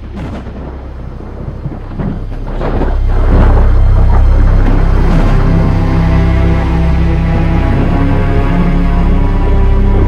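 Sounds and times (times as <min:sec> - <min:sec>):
deep low drone: 0:00.0 - 0:10.0
thunder rumbling: 0:00.0 - 0:10.0.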